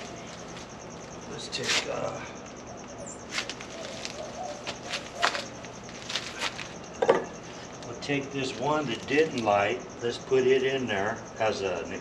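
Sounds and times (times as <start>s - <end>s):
tinder rustling and clicking: 3.3s - 6.8s
knocks on wooden bench: 7.0s - 7.3s.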